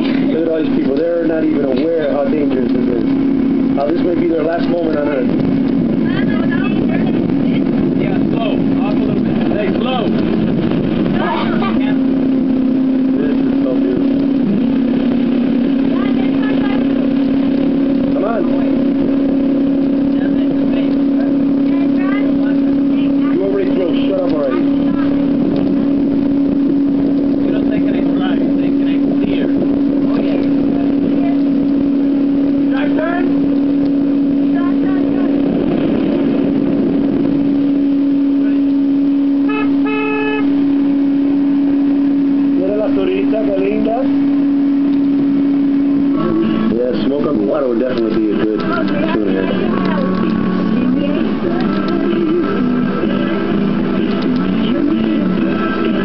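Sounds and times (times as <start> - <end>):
motorboat engine drone: 0.0 - 56.0
rushing water: 0.0 - 56.0
wind: 0.0 - 56.0.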